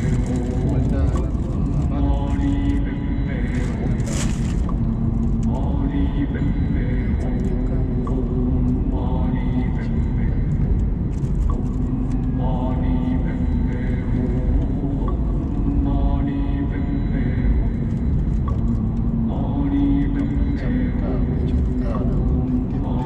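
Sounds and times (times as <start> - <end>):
car road and engine rumble: 0.0 - 23.0.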